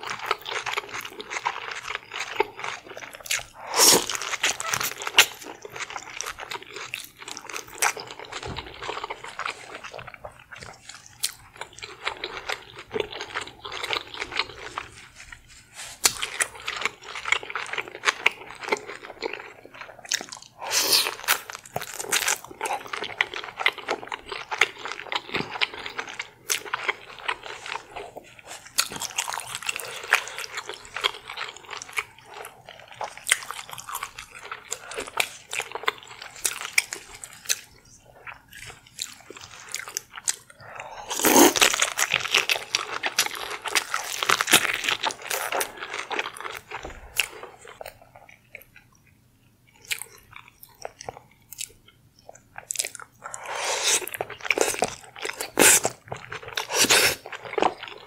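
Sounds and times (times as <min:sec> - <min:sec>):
chewing with wet mouth sounds: 0:00.0 - 0:58.0.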